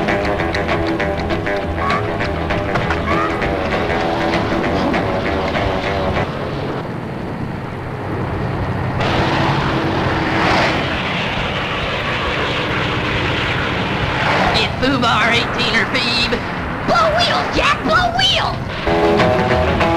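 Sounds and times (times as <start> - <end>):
rushing whoosh: 3.1 - 17.7, 18.6 - 19.9.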